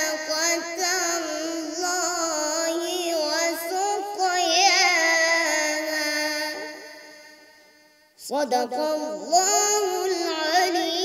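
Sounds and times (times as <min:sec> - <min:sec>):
boy chanting melodically: 0:00.0 - 0:11.0.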